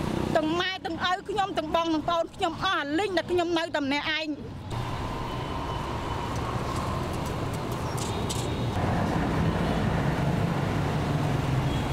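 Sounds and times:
motorbike and car engines passing: 0:04.7 - 0:11.9.

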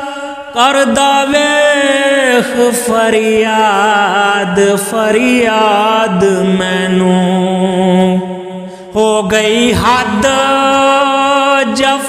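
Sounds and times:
person singing wordless vocal line: 0:00.0 - 0:12.0.

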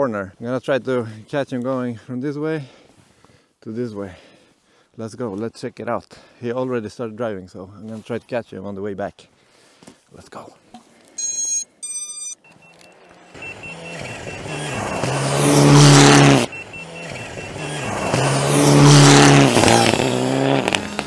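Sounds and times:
drone electronic beeps: 0:11.2 - 0:19.8
car engine revving hard: 0:13.3 - 0:21.0.

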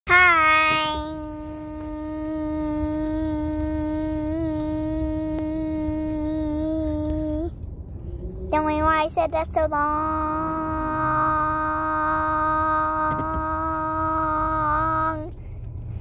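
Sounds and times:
boy singing a long note: 0:00.1 - 0:07.5, 0:09.6 - 0:15.3
car road rumble: 0:00.1 - 0:16.0.

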